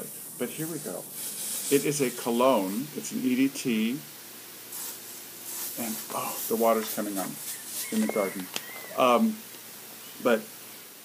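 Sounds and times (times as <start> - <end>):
short hissing sprays: 0.0 - 11.0.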